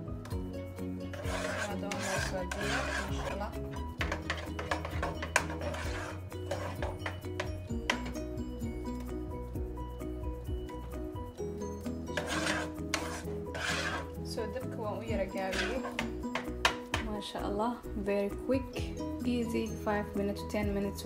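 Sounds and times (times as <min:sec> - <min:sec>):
background music: 0:00.0 - 0:21.0
spoon scraping custard in saucepan: 0:01.0 - 0:08.1, 0:12.0 - 0:14.2, 0:15.2 - 0:17.0.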